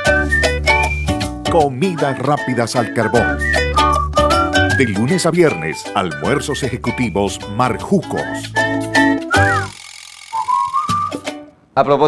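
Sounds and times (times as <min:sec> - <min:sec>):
person whistling: 0:00.0 - 0:01.4, 0:02.8 - 0:07.2, 0:08.1 - 0:11.4
advertising jingle music: 0:00.0 - 0:09.7.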